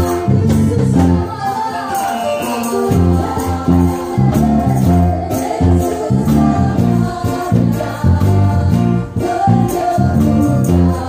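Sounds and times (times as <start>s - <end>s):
drum kit: 0.0s - 11.0s
electric bass guitar: 0.0s - 11.0s
group singing: 0.0s - 11.0s.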